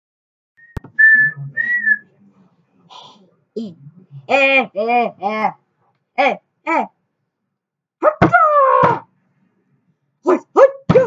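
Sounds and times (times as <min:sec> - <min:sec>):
high whistled notes: 0:00.6 - 0:02.1.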